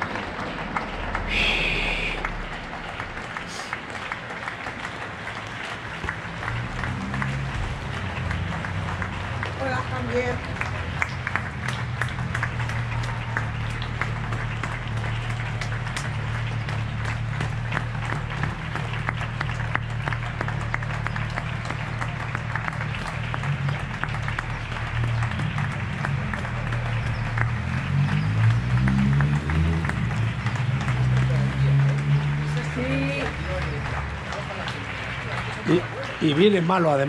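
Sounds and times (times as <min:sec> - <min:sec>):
crowd clapping: 0:00.0 - 0:37.0
hands clapping close by: 0:00.0 - 0:37.0.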